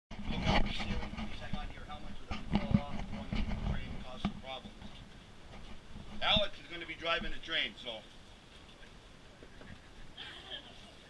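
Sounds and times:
people talking indistinctly: 0.2 - 11.0.

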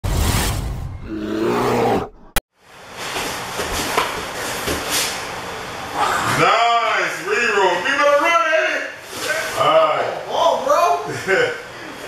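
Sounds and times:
room noise: 1.4 - 12.0.

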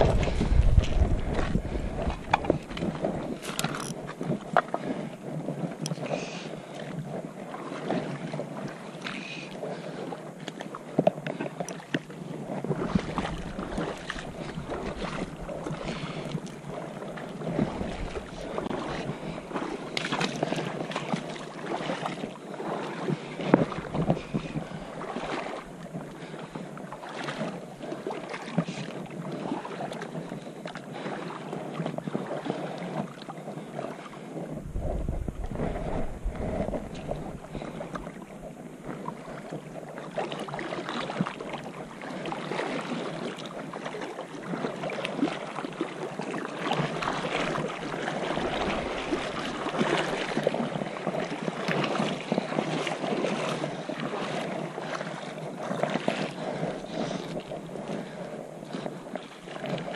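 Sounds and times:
small knocks and splashes: 0.0 - 4.9, 17.5 - 22.2
wind buffeting microphone: 0.0 - 8.9, 12.1 - 26.6, 28.6 - 42.2, 46.2 - 59.9
river water lapping over rocks: 0.0 - 59.9.

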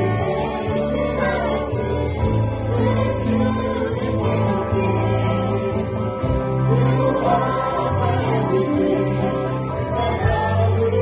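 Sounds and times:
keyboard and electric guitars: 0.0 - 11.0
woman singing lead: 0.0 - 11.0.

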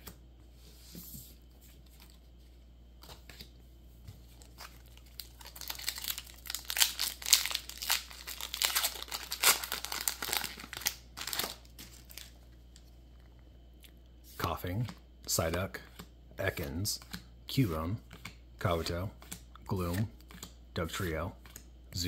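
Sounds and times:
foil wrapper crinkling and tearing: 4.4 - 12.4.

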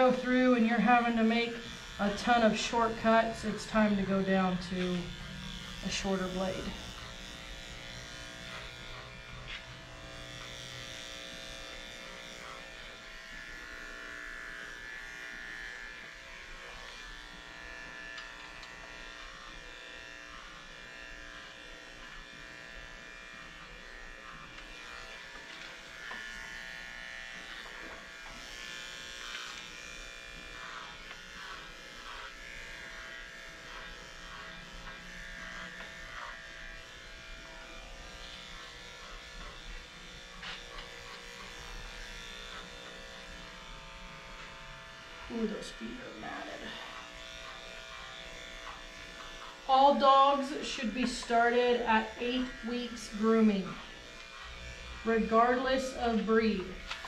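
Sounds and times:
clippers cutting through mats: 0.0 - 57.0
electric clippers running: 0.0 - 57.0.

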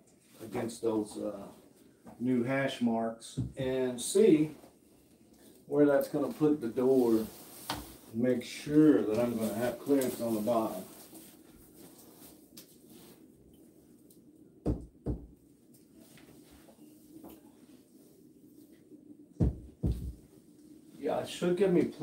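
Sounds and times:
door slab thumping on wall and floor: 19.4 - 20.2.

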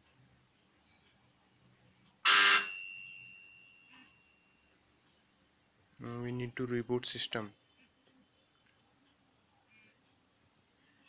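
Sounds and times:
loud buzzing alert tone: 2.3 - 2.8
high ringing tone: 2.3 - 4.7.

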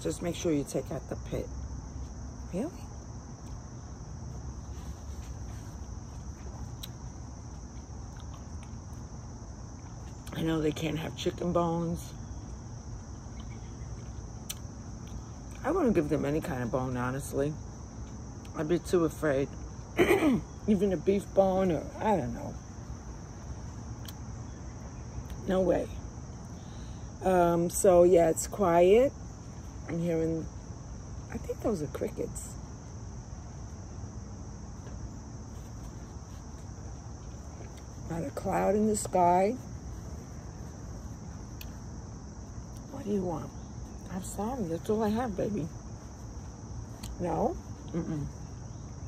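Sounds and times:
crickets chirring: 0.0 - 49.0.

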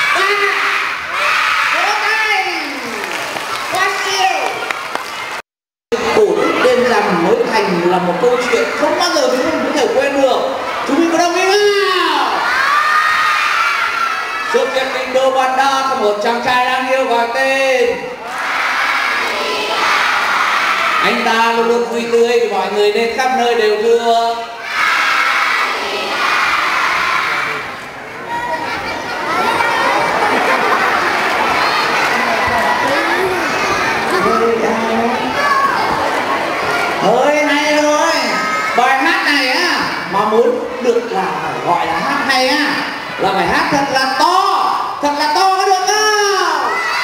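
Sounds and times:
children shouting and cheering: 0.0 - 5.4, 6.0 - 15.4, 18.2 - 21.6, 24.5 - 40.3, 41.5 - 47.0
young children's voices: 24.6 - 40.2.

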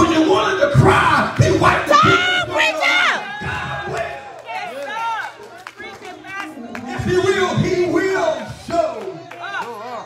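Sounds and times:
preacher shouting into a microphone: 0.0 - 5.0
congregation calling back: 0.0 - 9.7.

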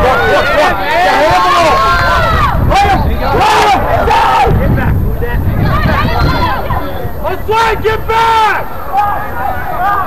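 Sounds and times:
people shouting: 0.0 - 4.6, 5.6 - 10.0.

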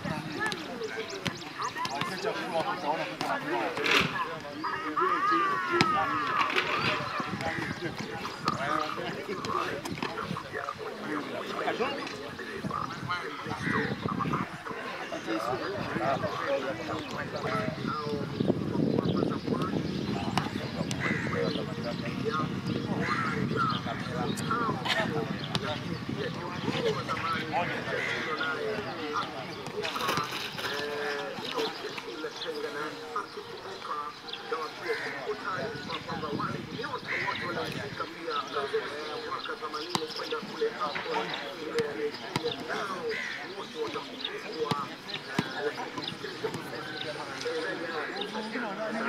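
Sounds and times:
balls being kicked: 0.0 - 4.5, 5.7 - 10.2, 41.7 - 42.9, 44.6 - 46.8
people calling and shouting: 0.0 - 49.0.

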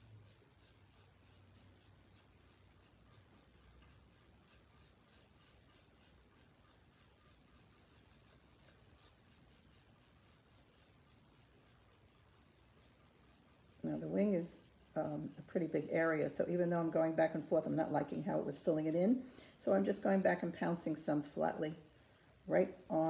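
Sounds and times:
paintbrush scratching on ceramic: 0.0 - 23.0.

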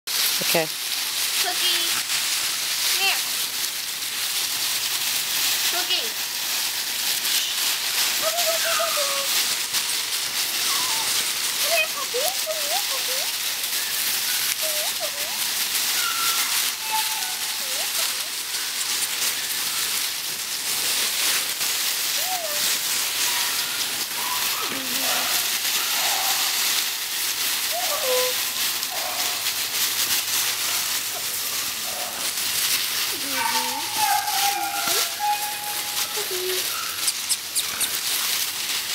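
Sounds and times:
dry leaves rustling and crackling: 0.1 - 38.9
puppy whines and yelps: 10.6 - 11.2, 13.7 - 18.4, 22.2 - 26.4, 27.7 - 29.1, 33.2 - 38.0.

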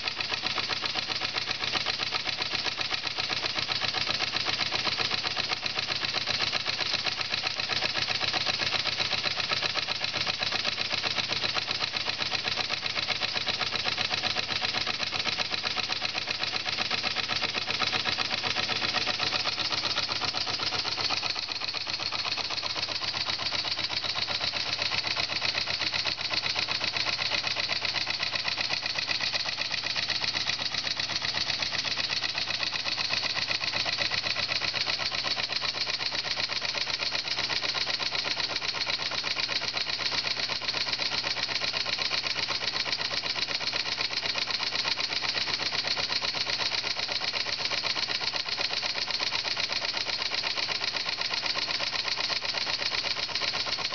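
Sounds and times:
model steam engine exhaust beating: 0.0 - 53.9.

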